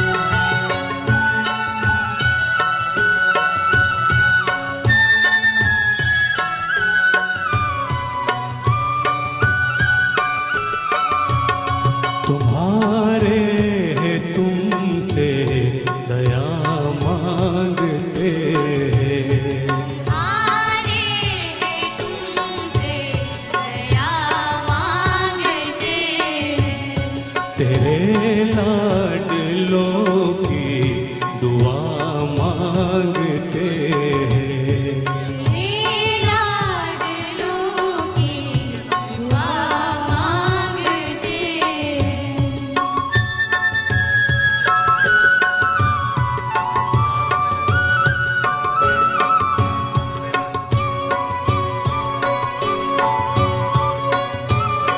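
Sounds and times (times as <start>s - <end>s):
live orchestra: 0.0s - 12.3s, 43.1s - 54.9s
percussion strikes: 0.0s - 54.9s
man singing: 12.2s - 20.2s, 27.5s - 36.0s
women singing: 19.8s - 28.0s, 35.1s - 43.4s.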